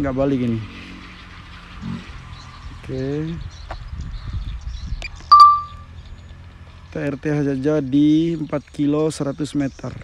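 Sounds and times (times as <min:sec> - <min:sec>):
bright ding: 0:05.3 - 0:05.8.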